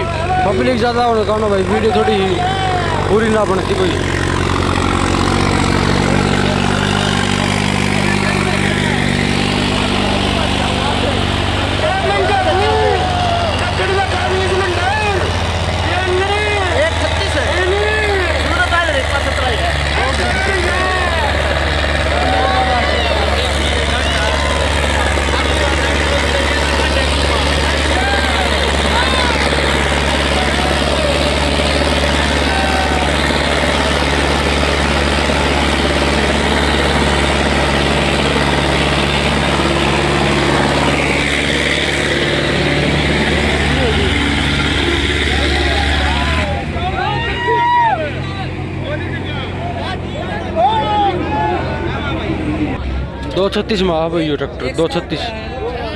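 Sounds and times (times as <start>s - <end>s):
spectators shouting: 0.0s - 53.3s
tractor diesel engine under load: 0.0s - 55.9s.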